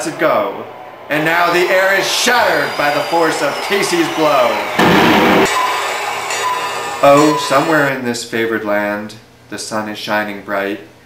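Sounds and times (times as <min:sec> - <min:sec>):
loud crash with ringing: 0:01.5 - 0:07.9.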